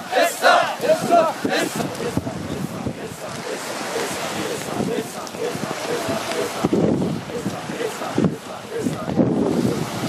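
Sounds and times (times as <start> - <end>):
men shouting in unison: 0.0 - 10.0
surf: 0.0 - 10.0
wind on microphone: 0.0 - 10.0.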